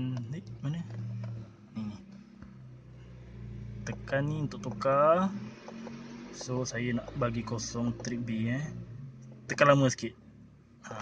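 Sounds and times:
car interior low hum: 0.0 - 11.0.

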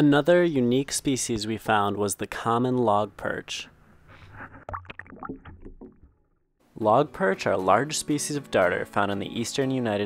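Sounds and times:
water splashing in plastic buckets: 4.6 - 6.3.

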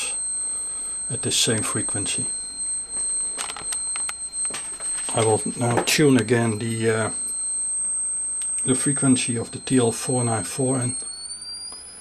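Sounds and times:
high-pitched transformer coil squeal: 0.0 - 12.0.

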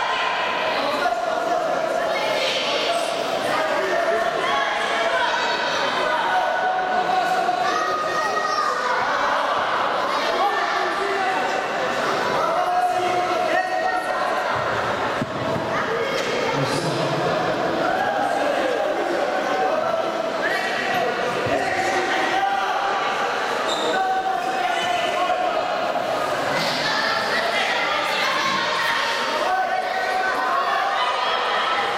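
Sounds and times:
voices shouting in a hall: 0.0 - 31.9.

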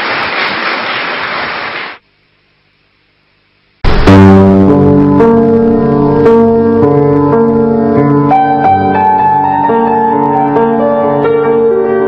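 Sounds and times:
audience applauding: 0.0 - 2.0
grand piano music: 3.9 - 12.0.

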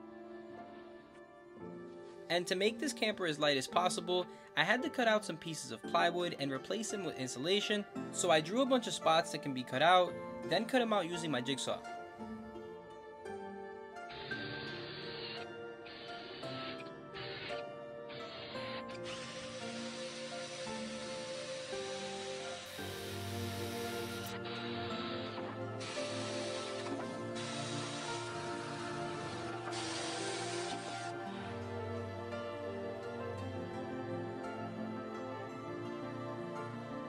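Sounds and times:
background music: 0.0 - 37.0
jigsaw cutting plywood: 14.1 - 28.4.

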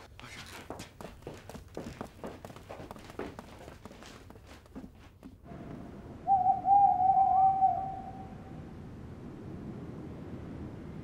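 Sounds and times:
owl hooting: 6.2 - 8.5.

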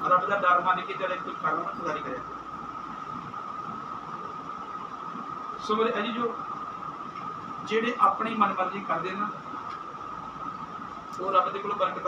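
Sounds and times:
background hiss: 0.0 - 12.0
mid-pitched hum: 0.0 - 12.0.

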